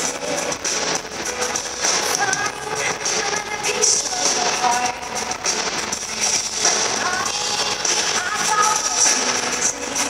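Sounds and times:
live pop band music: 0.0s - 10.0s.

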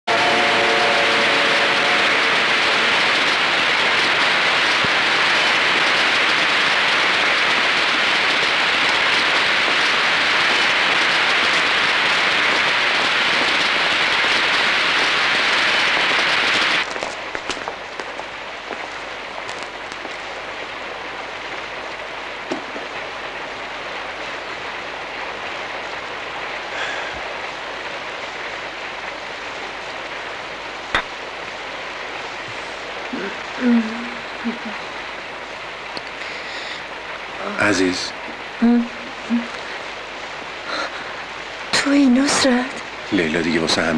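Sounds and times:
heavy rain pouring: 0.0s - 43.9s
soft rain: 0.1s - 43.9s.

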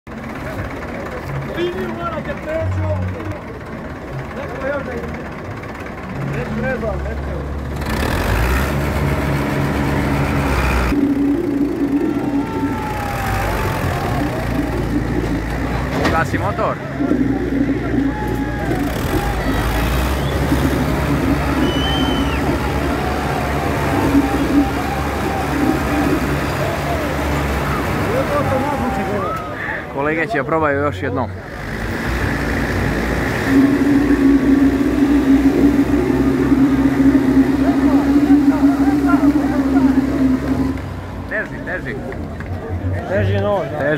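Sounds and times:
tractor diesel engines idling: 0.0s - 43.9s
crowd voices: 0.1s - 43.9s
men talking: 0.2s - 7.7s, 12.4s - 31.5s, 35.2s - 43.9s.

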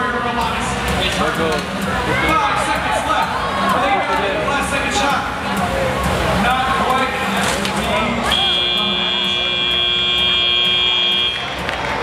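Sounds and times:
arena crowd noise: 0.0s - 12.0s
electronic buzzer tone: 8.3s - 11.4s.

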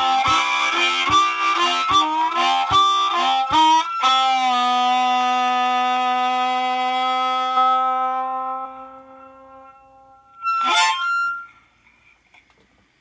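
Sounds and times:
harmonica notes: 0.0s - 11.8s.

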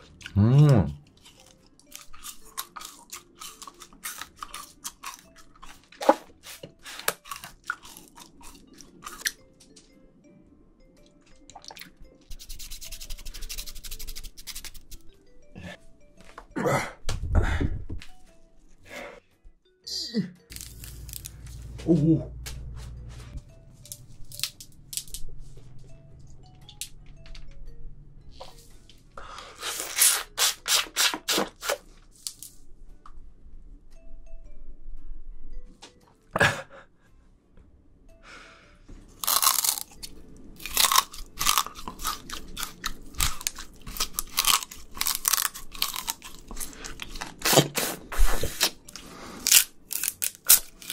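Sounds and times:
teeth crunching sugar cane: 0.0s - 9.4s, 39.2s - 50.9s
quiet background melody: 0.0s - 50.9s
knife shaving cane rind: 12.3s - 15.1s, 29.5s - 31.8s, 40.6s - 50.9s.

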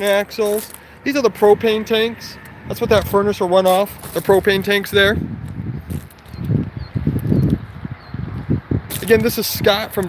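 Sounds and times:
footsteps on gravel: 0.0s - 1.6s, 2.4s - 7.6s, 8.9s - 10.0s
wind rumble on microphone: 1.4s - 10.0s.

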